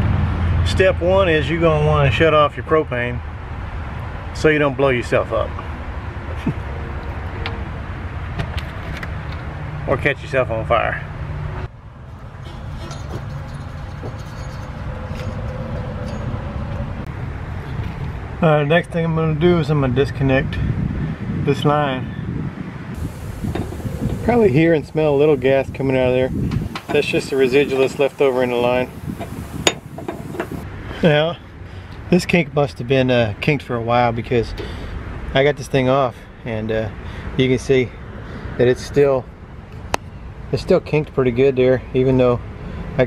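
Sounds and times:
low outdoor background rumble: 23.0s - 30.7s
wrench clinking on metal fitting: 29.2s - 30.6s.

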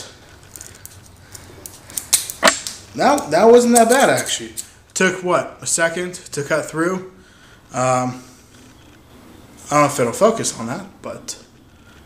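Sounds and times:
twig snapping: 0.5s - 2.8s.

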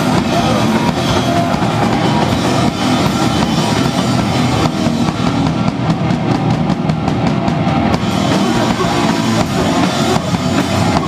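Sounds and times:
fast drum hits: 0.0s - 11.0s
loud punk band playing: 0.0s - 11.0s.

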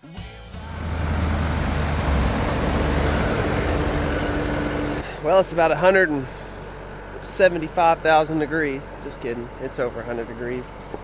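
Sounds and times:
diesel engine rumbling: 0.5s - 11.0s.

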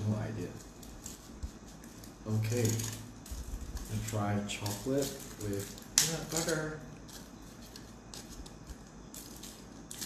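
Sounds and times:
foil wrapper crinkling: 0.0s - 10.0s.

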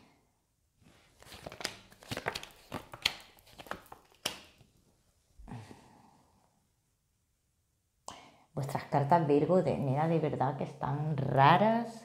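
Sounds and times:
cards rustling and snapping: 1.2s - 4.7s.

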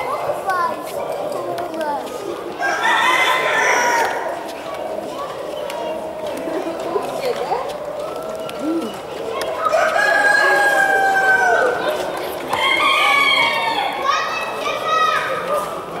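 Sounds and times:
background chatter of voices: 0.0s - 16.0s
roosters crowing: 2.6s - 4.4s, 9.6s - 11.9s, 12.5s - 14.0s.

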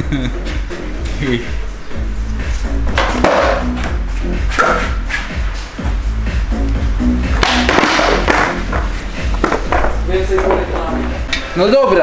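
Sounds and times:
music with steady bass: 0.0s - 12.0s.

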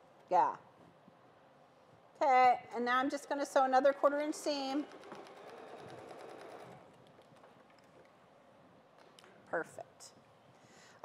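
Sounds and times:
electric sewing machine stitching: 3.0s - 7.0s.

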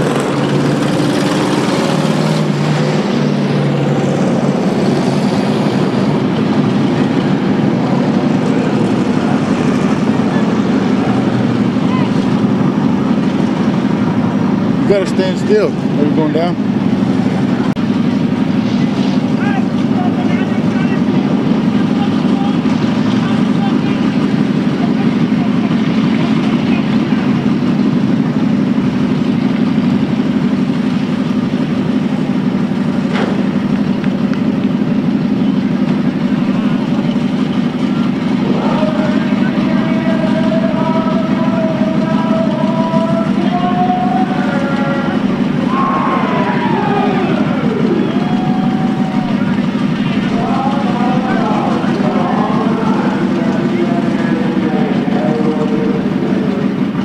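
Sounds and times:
engine changing speed: 0.0s - 57.0s
stock car engines rumbling: 0.0s - 57.0s.

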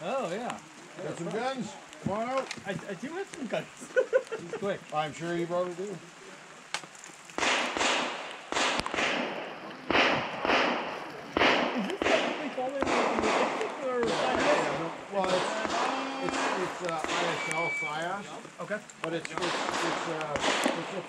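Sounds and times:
handgun shots echoing: 7.4s - 14.6s.

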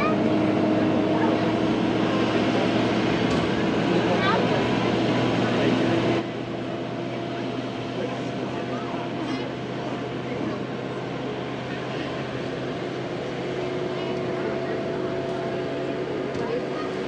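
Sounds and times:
tram hum and road noise: 0.0s - 17.0s.

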